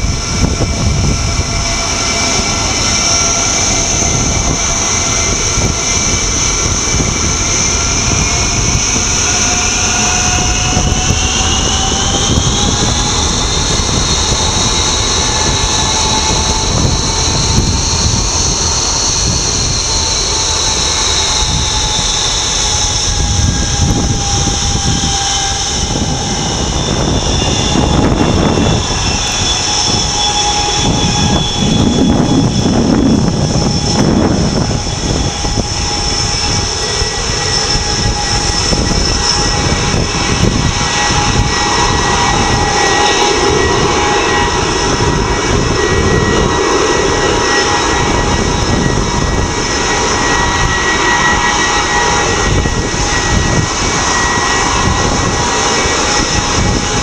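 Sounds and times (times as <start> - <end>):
jet engines whining: 0.0 - 57.0.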